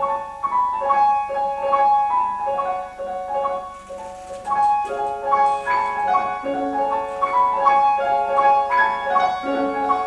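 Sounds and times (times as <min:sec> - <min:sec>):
grand piano playing quick passage: 0:03.3 - 0:10.0.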